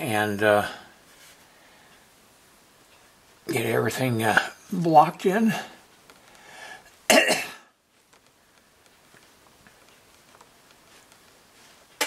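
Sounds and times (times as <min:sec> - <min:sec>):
man coughing: 0:07.1 - 0:07.7.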